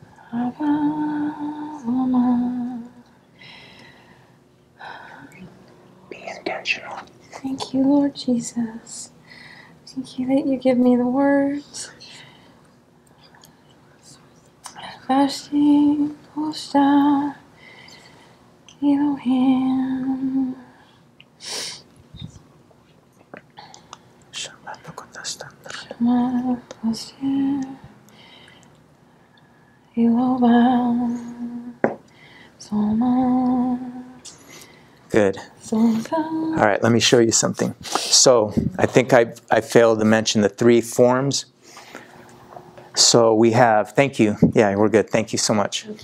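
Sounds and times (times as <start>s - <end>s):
person whispering: 6.1s - 7.1s, 24.3s - 26.0s.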